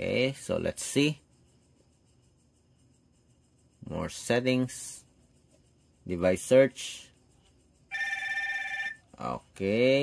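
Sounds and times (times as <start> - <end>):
smartwatch vibrating buzz: 7.4 - 9.2.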